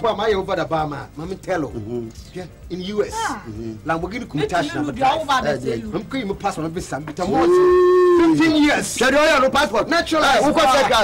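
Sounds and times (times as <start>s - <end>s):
long held vocal call: 7.4s - 8.4s.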